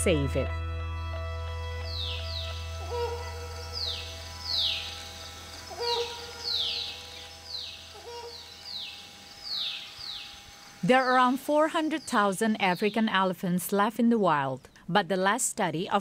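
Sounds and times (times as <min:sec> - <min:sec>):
low drone: 0:00.0 - 0:13.0
bird whistled calls: 0:01.9 - 0:05.1, 0:05.7 - 0:10.4.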